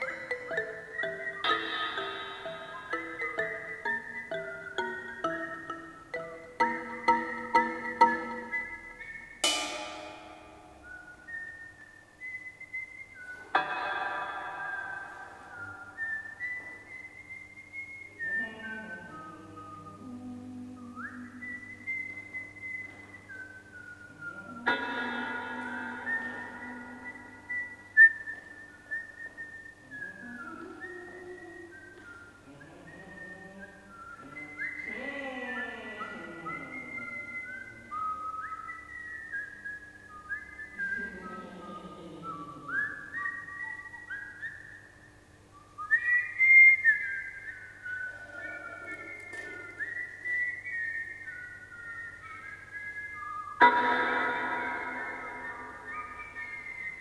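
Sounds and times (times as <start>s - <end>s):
high whistled melody: 0.0s - 18.5s, 20.8s - 32.4s, 33.0s - 57.0s
sharp strikes: 1.4s - 3.4s, 9.4s - 10.9s, 13.5s - 15.4s, 53.6s - 56.2s.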